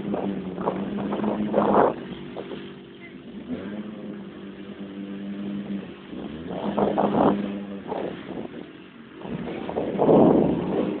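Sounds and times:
quad engine running in mud: 0.0 - 11.0.

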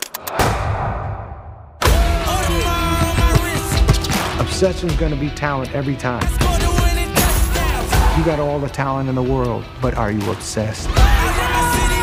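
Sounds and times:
trailer music: 0.0 - 12.0
loud hit: 0.4 - 2.2.

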